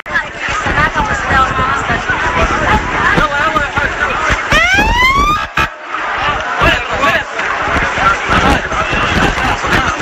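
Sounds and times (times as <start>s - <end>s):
people talking: 0.0s - 10.0s
siren whoop: 4.5s - 5.7s.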